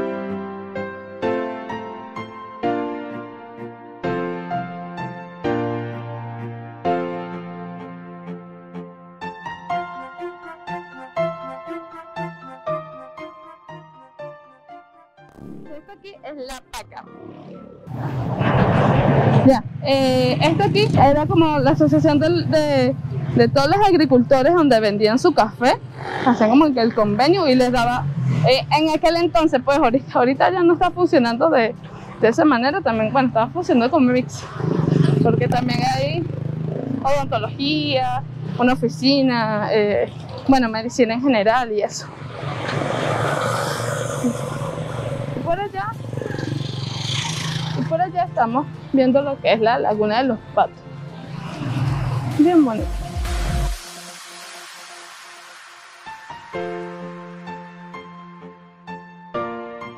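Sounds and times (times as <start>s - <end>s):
background music: 0.0s - 59.9s
road noise: 15.3s - 58.2s
street noise buffeting microphone: 15.4s - 53.7s
vehicle engine running: 19.8s - 34.3s, 35.0s - 41.6s.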